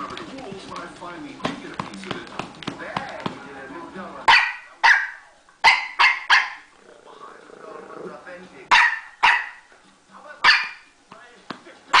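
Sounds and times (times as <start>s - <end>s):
voices from a broadcast: 0.0s - 5.5s, 6.6s - 12.0s
dog barking: 4.3s - 6.7s, 8.7s - 9.7s, 10.4s - 10.9s.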